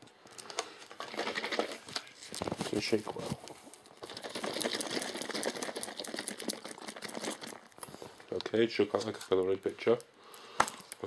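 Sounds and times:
plastic cup shaken rattling: 0.7 - 9.7.

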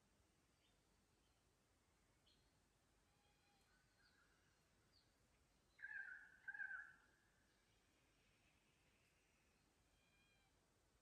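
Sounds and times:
distant bird chirps: 3.2 - 10.5.

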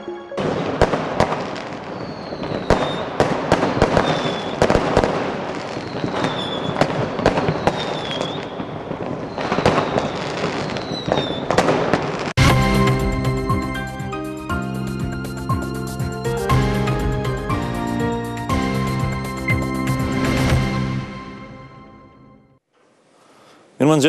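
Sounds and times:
music jingle: 0.0 - 1.2, 12.4 - 22.6
falling firework whistles: 0.4 - 12.3
fireworks banging and crackling: 0.4 - 13.3.

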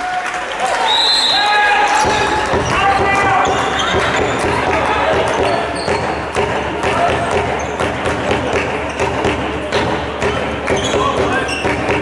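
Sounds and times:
ball bouncing on hall floor: 1.9 - 12.0
shoes squeaking on court: 3.2 - 4.5, 5.2 - 6.3, 7.5 - 7.9, 10.7 - 12.0.

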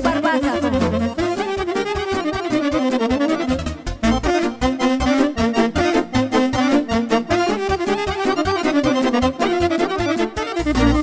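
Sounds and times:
saxophones and accordion playing: 0.0 - 11.0.

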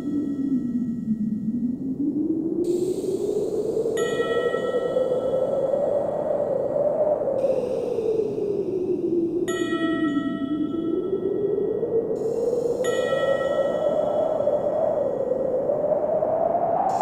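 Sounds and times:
ambient wind-like drone: 0.0 - 17.0.

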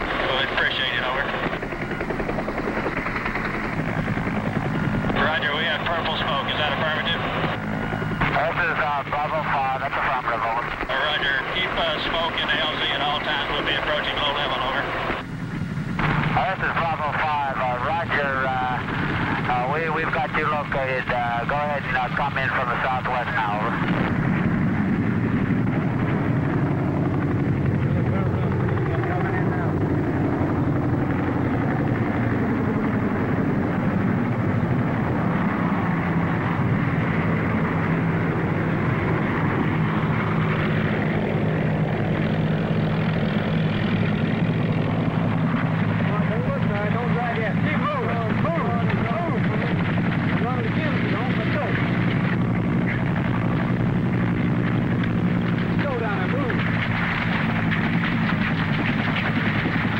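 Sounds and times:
helicopter engine and rotor drone: 0.0 - 59.9.

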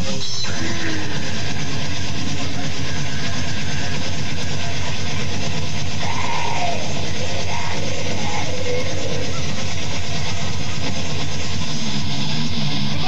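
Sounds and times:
electric guitars: 0.0 - 13.0.

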